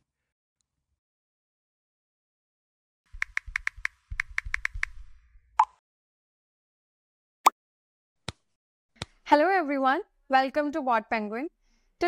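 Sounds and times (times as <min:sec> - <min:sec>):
keyboard key clicks: 0:03.2 - 0:05.0.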